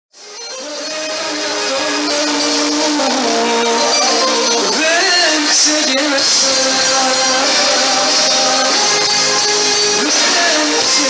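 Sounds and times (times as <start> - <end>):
live band popular music: 0.2 - 11.0.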